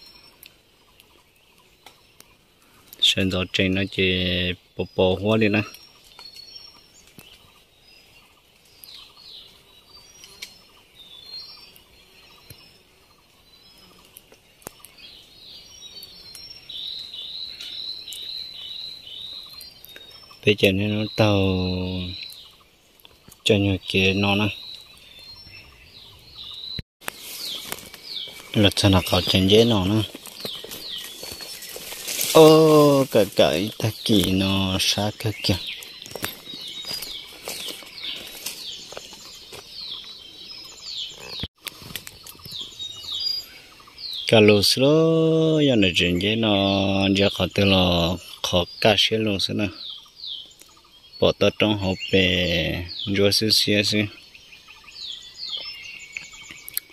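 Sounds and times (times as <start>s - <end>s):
wild birds calling: 0.0s - 56.9s
footsteps on dirt trail: 26.4s - 43.4s
plants rustling: 27.0s - 43.2s.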